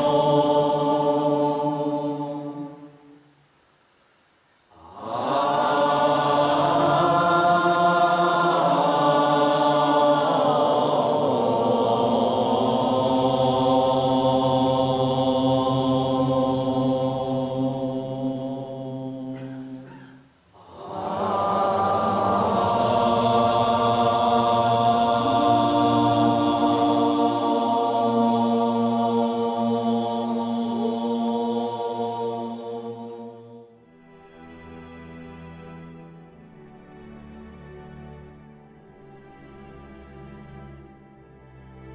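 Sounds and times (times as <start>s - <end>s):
voices chanting long tones: 0.0s - 3.4s, 4.7s - 34.4s.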